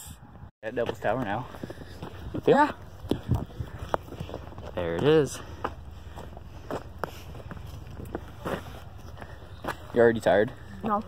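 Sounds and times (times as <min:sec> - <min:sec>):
footsteps on asphalt: 0:00.6 - 0:11.0.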